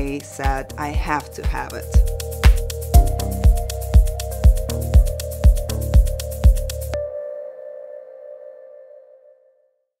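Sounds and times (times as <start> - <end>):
electronic music with kick drum: 0.0 - 7.2.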